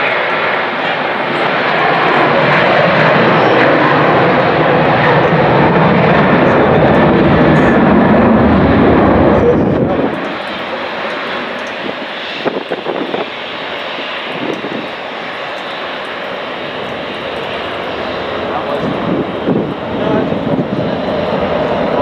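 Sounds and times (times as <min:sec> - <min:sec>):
jet engines at takeoff: 0:00.0 - 0:22.0.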